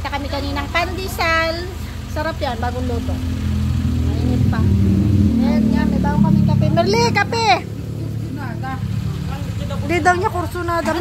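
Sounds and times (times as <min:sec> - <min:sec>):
engine-like hum: 0:00.0 - 0:11.0
quiet talking: 0:00.0 - 0:11.0.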